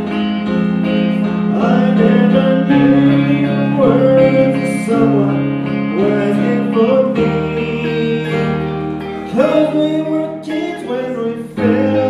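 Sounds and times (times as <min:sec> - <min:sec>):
electric guitar: 0:00.0 - 0:12.0
keyboard: 0:00.0 - 0:12.0
man singing a slow ballad: 0:01.2 - 0:12.0.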